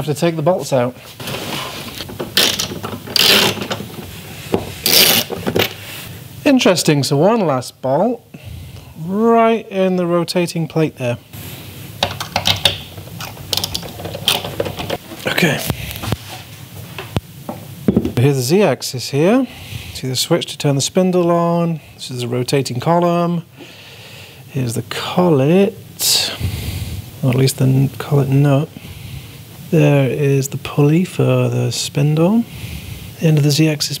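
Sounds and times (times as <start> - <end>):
ratchet wrench clicking: 2.4 - 3.6, 4.9 - 5.3
metal parts clunking on wooden bench: 12.0 - 15.0.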